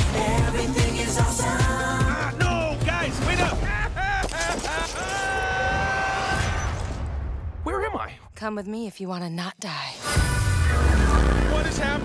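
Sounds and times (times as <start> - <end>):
man yelling and screaming: 4.9 - 6.6.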